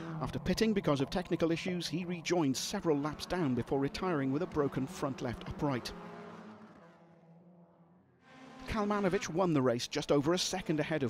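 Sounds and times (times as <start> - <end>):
race car engine moving off: 0.8 - 7.6.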